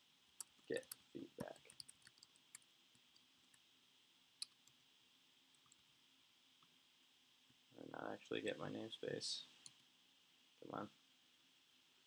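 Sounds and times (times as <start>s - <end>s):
keyboard typing: 0.4s - 3.6s, 4.4s - 4.8s.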